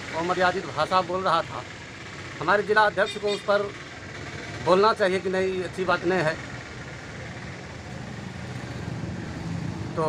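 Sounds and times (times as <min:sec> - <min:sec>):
engine humming: 0:00.0 - 0:10.0.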